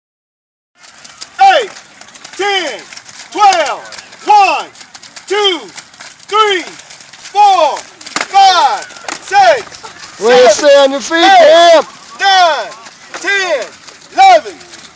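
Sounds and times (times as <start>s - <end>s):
person shouting a call: 1.4s - 1.8s, 2.4s - 4.7s, 5.3s - 5.7s, 6.3s - 14.6s.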